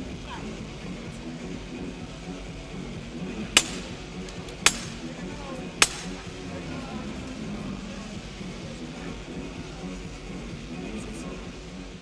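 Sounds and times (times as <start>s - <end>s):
arena crowd murmur: 0.0s - 12.0s
sharp knocks: 4.6s - 5.0s, 5.8s - 6.1s.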